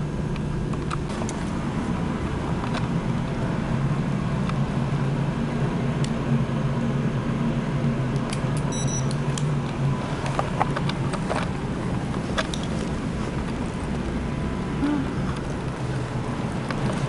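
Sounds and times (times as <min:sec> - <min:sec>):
machinery hum: 0:00.0 - 0:17.0
high electronic beep: 0:08.7 - 0:09.1.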